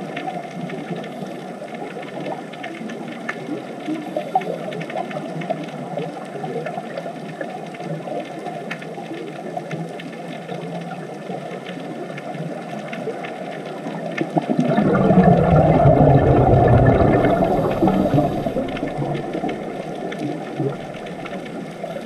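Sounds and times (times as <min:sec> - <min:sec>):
underwater bubbling crackle: 0:00.0 - 0:22.0
faint sharp clicks: 0:07.8 - 0:22.0.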